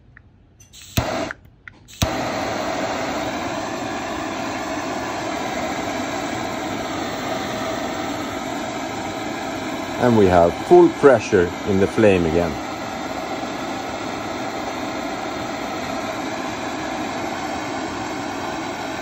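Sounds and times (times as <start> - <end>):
torch igniter clicks: 0.1 - 11.8
jet flame hissing: 0.7 - 19.0
gas spurt: 1.9 - 19.0.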